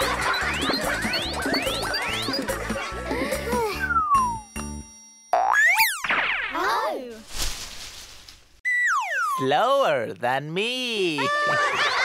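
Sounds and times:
cartoon rising whistle: 0:03.8 - 0:04.5, 0:08.7 - 0:09.4.

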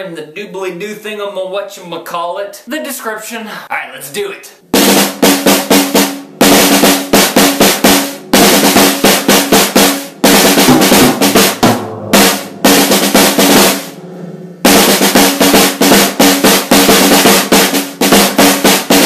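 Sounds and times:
snare drum rolls: 0:04.7 - 0:14.0, 0:14.6 - 0:19.0
bass drum: 0:04.7 - 0:19.0.

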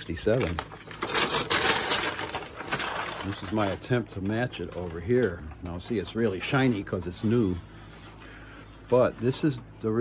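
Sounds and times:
paper crinkling and rustling: 0:00.0 - 0:10.0.

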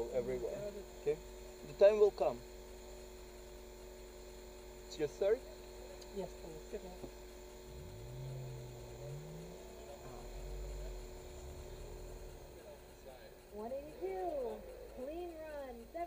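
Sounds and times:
idling car hum: 0:00.0 - 0:16.0
car engine accelerating: 0:06.3 - 0:16.0
low rumble: 0:07.7 - 0:13.5
muffled talk: 0:08.8 - 0:16.0.

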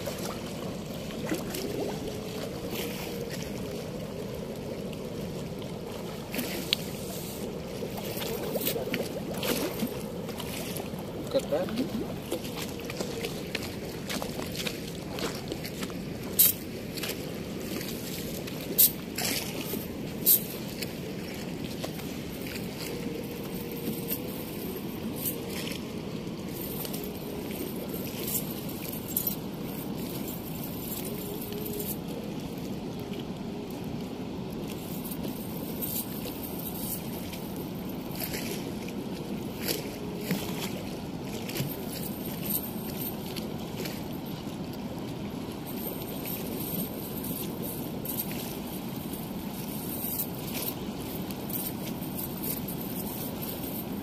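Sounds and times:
water rushing through sluice gate: 0:00.0 - 0:54.0.

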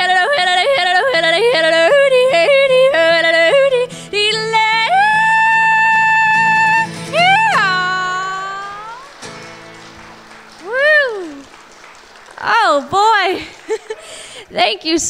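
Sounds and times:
woman yodeling: 0:00.0 - 0:09.1, 0:10.6 - 0:11.4
acoustic guitar: 0:00.0 - 0:14.4.

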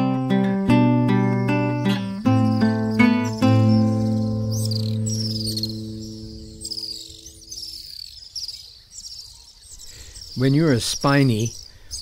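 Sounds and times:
guitar chord ringing: 0:00.0 - 0:07.6
insects chirping: 0:00.0 - 0:12.0.

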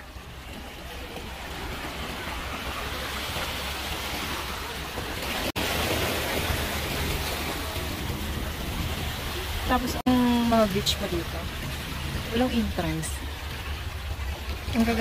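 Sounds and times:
sea water splashing against rocks: 0:00.0 - 0:15.0.

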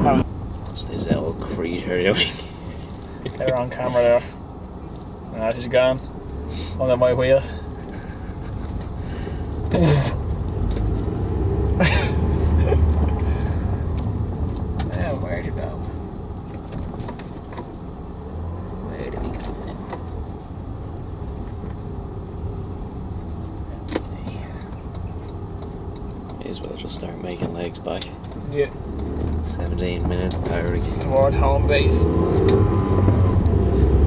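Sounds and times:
car engine and tyres rumbling: 0:00.0 - 0:34.0
sharp clicks and knocks: 0:32.3 - 0:33.6.

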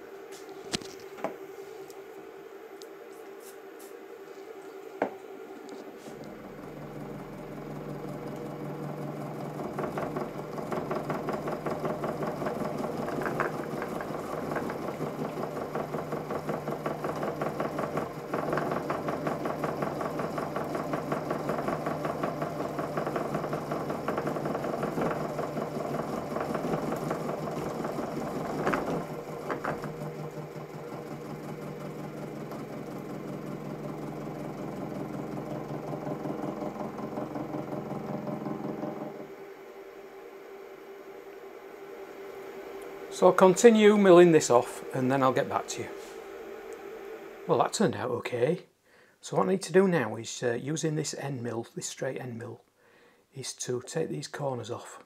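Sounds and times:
milling machine motor hum: 0:00.0 - 0:47.5.

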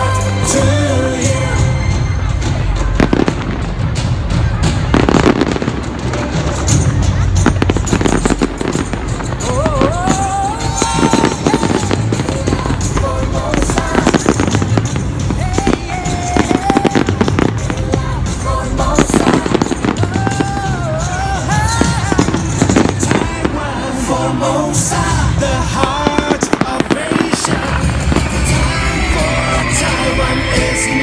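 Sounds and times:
fireworks bangs and crackles: 0:00.0 - 0:31.0
loud music with melody: 0:00.0 - 0:31.0.

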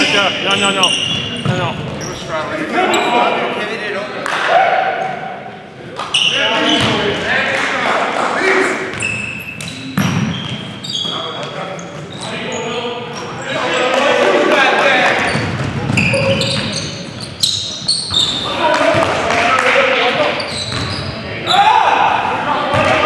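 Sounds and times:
basketball bouncing on court: 0:00.9 - 0:02.1, 0:06.7 - 0:07.2, 0:08.9 - 0:11.2, 0:15.2 - 0:19.3, 0:20.6 - 0:21.0, 0:22.7 - 0:23.0
players shouting: 0:13.4 - 0:15.4, 0:21.4 - 0:23.0.

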